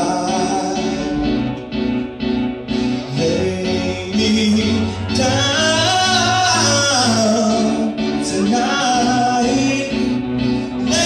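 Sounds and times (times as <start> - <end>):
man singing pop ballad: 0.0 - 1.6, 3.0 - 11.0
instrumental backing: 0.0 - 11.0.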